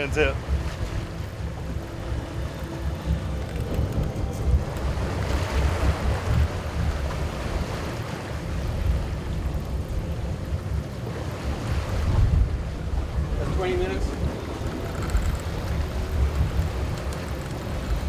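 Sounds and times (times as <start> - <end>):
open sea water washing: 0.0 - 18.0
wind rumbling on microphone: 0.0 - 18.0.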